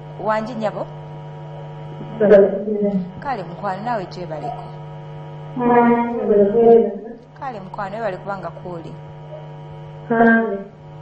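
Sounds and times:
electrical mains hum: 0:00.0 - 0:11.0
person's voice: 0:00.2 - 0:00.9, 0:02.0 - 0:04.8, 0:05.6 - 0:09.0.

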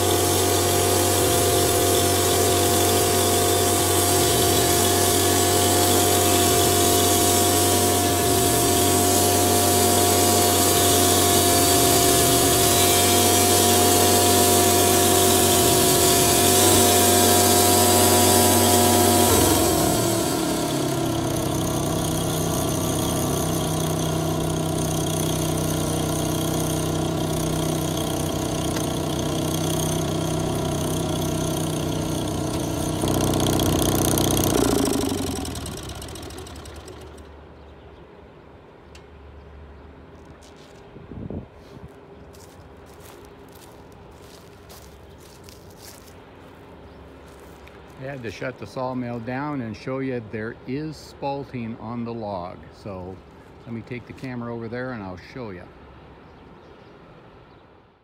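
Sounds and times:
band sawmill blade whining: 0:00.0 - 0:37.4, 0:42.4 - 0:55.7
engine running: 0:00.0 - 0:37.8.

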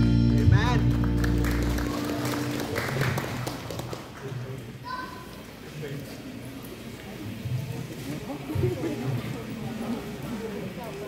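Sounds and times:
audience clapping: 0:00.2 - 0:04.8.

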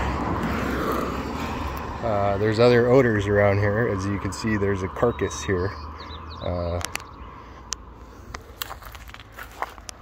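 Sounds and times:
vehicle passing by: 0:00.0 - 0:10.0.

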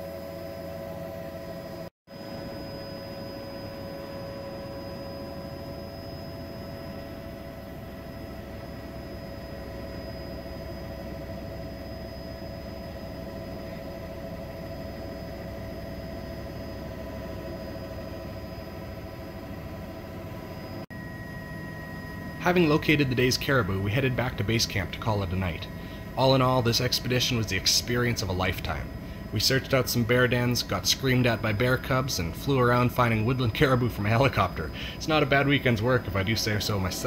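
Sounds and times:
helicopter engine drone: 0:01.1 - 0:37.0
high whining tones: 0:20.4 - 0:37.0.

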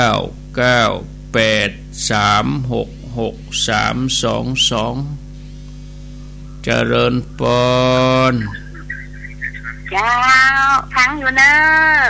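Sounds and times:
man speaking: 0:00.0 - 0:05.2, 0:06.6 - 0:09.9
low electrical hum: 0:00.0 - 0:12.0.

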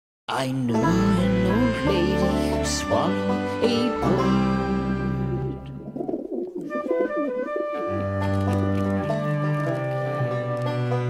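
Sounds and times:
banjo music: 0:00.5 - 0:11.0
pigeon cooing: 0:05.1 - 0:08.0.

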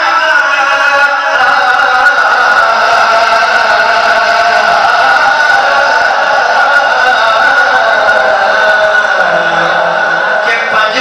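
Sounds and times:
man singing unaccompanied: 0:00.0 - 0:11.0.

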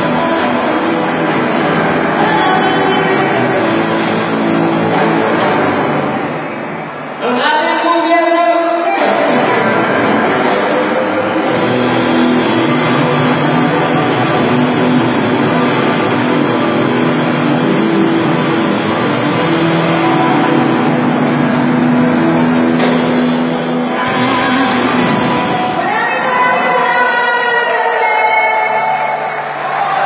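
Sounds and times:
live rock band playing: 0:00.0 - 0:07.2, 0:08.8 - 0:28.2.

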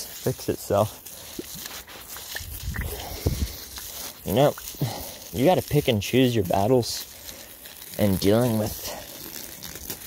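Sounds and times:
garden hose spraying water: 0:00.0 - 0:10.0.

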